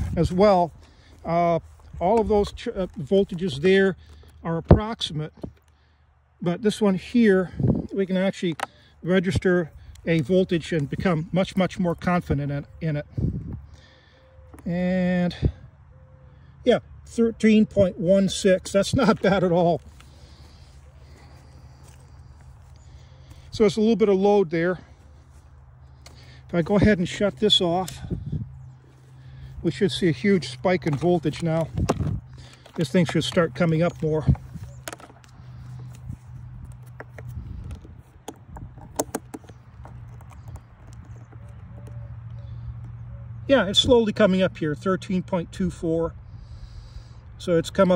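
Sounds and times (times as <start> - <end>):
test probes clicking and tapping: 30.4 - 43.0.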